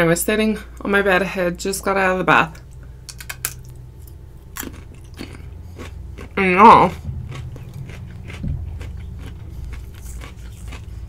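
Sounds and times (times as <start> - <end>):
chewing crisp cucumber crunches: 3.1 - 11.0.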